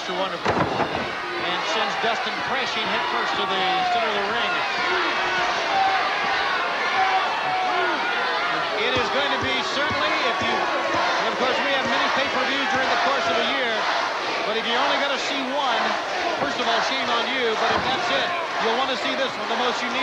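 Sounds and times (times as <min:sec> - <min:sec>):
men talking: 0:00.0 - 0:06.0, 0:06.9 - 0:20.0
arena crowd noise: 0:00.0 - 0:20.0.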